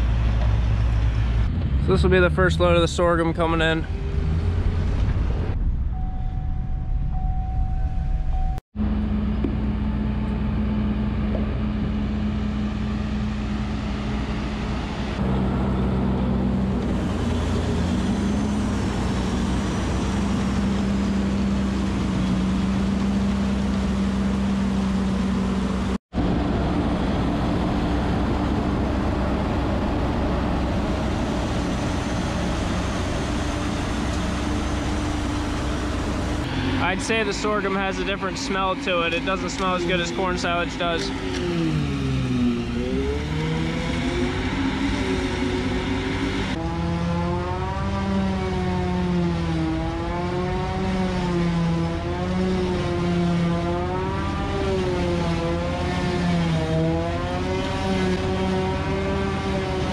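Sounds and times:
silage bagger and tractor humming: 0.0 - 59.9
vehicle engine from inside cab: 0.0 - 59.9.

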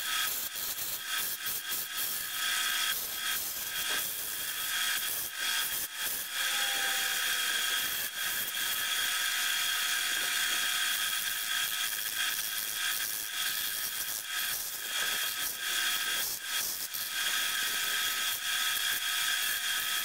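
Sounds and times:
lathe high whine: 2.0 - 12.0.

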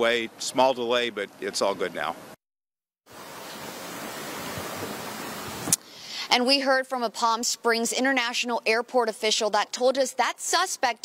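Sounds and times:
outdoor background hiss: 0.0 - 2.4, 3.1 - 11.0.

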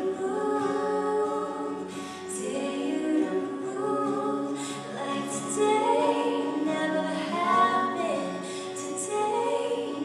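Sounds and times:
women singing in harmony: 0.0 - 10.0.

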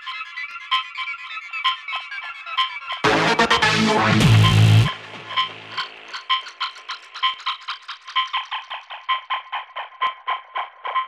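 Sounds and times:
clicky percussion loop: 3.0 - 11.0.

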